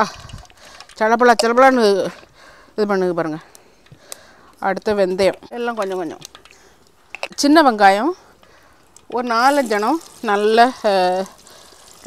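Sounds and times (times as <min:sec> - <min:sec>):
woman speaking: 0:01.0 - 0:02.2, 0:02.8 - 0:03.4, 0:04.6 - 0:06.3, 0:07.3 - 0:08.2, 0:09.1 - 0:11.3.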